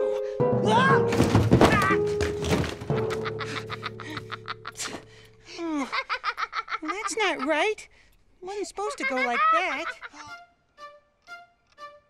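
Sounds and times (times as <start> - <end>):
background music: 0.0 - 7.8, 8.5 - 12.0
clattering crash thuds: 1.1 - 3.4.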